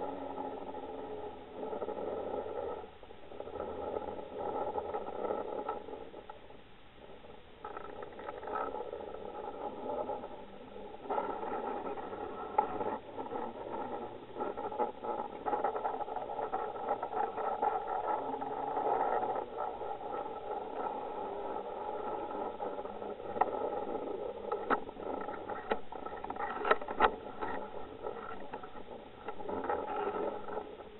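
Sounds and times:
muffled underwater hum: 0.0s - 30.9s.

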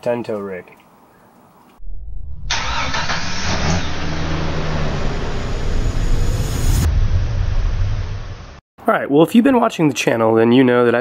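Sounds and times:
vehicle engine starting and running: 1.8s - 8.6s.

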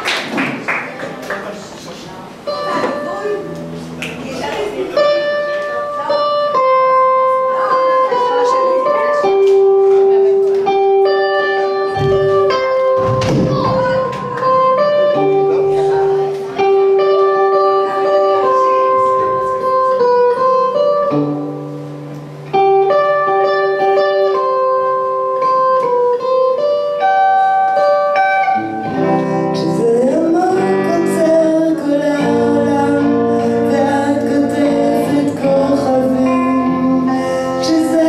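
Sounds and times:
clean electric guitar melody: 2.4s - 38.0s
woman singing: 29.4s - 38.0s.

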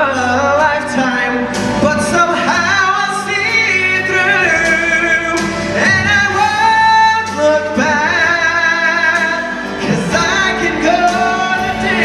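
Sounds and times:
musical accompaniment: 0.0s - 12.0s
person singing a ballad: 0.0s - 12.0s.

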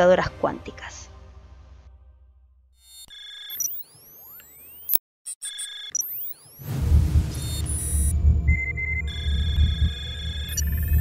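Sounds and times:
sweeping electronic tones: 2.8s - 11.0s
high electronic beep chord: 3.0s - 11.0s.

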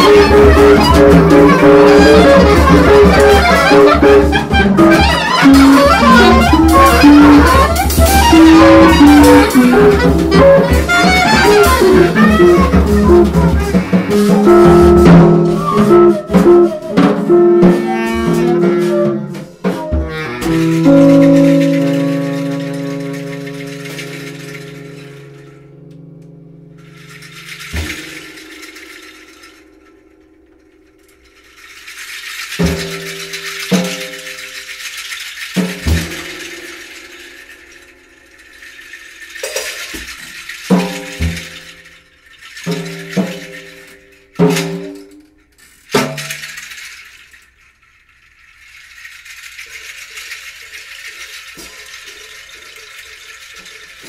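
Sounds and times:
plucked electric guitar notes: 0.0s - 30.7s
rattling scratchy percussion: 0.0s - 54.0s.

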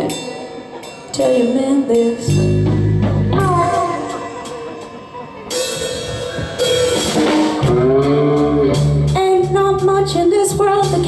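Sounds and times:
live blues band: 0.0s - 11.0s.

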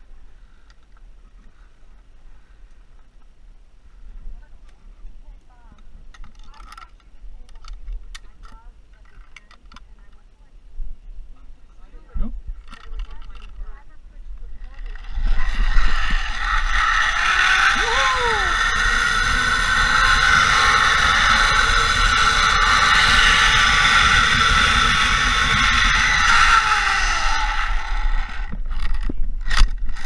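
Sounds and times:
wind rushing over microphone: 14.0s - 30.0s
zipline trolley pulleys whirring: 14.6s - 30.0s.

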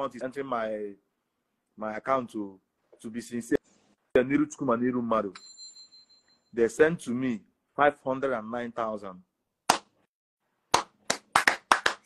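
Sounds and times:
hands clapping: 9.7s - 10.0s, 10.7s - 12.0s.

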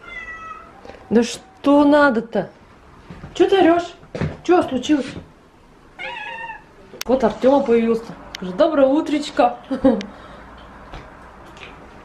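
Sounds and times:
cat meowing: 0.0s - 1.1s, 6.0s - 6.8s.

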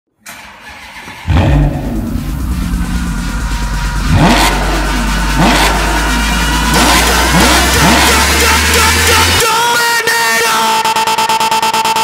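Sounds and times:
vehicle engine starting and running: 0.2s - 9.6s.

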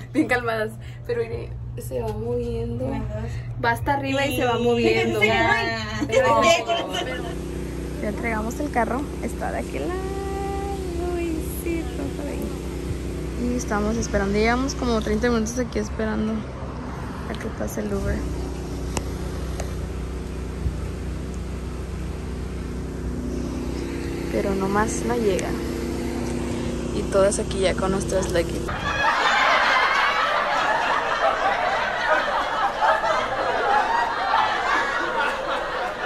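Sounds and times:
women talking: 0.0s - 12.6s, 13.4s - 16.5s, 17.2s - 18.3s, 24.3s - 25.7s, 26.9s - 28.7s
steady low hum: 0.0s - 36.0s.

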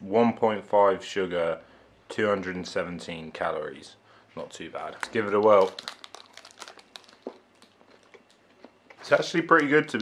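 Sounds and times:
faint chewing: 5.0s - 9.0s.

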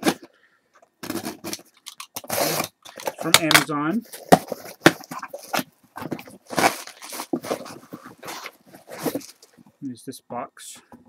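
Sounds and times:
cardboard being torn open: 1.0s - 9.4s.

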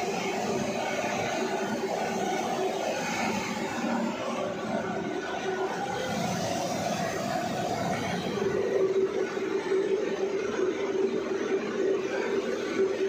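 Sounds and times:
machine hum: 0.0s - 13.0s.

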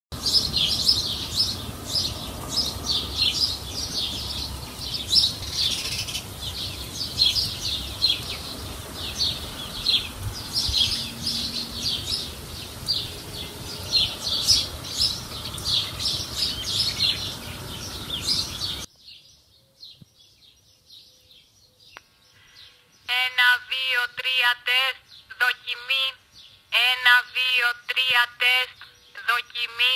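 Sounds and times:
birds chirping: 0.2s - 29.9s.

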